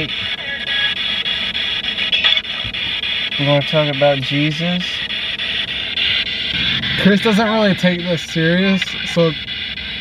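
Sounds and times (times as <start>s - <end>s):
choppy radio static: 0.0s - 10.0s.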